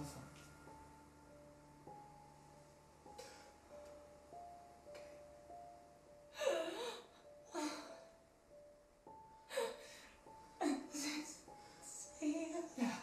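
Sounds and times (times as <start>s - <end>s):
slow film score: 0.0s - 13.0s
woman breathing: 3.0s - 4.0s, 9.2s - 12.2s
woman sobbing: 6.3s - 8.1s, 9.5s - 9.9s, 10.6s - 11.4s.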